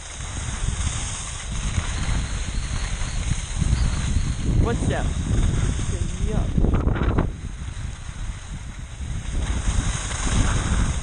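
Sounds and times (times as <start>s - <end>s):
skis hissing over snow: 0.0s - 11.0s
wind rumbling on microphone: 0.0s - 11.0s.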